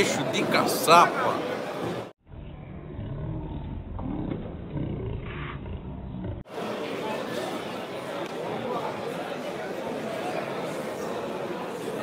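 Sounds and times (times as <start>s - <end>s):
murmur of onlookers: 6.5s - 12.0s.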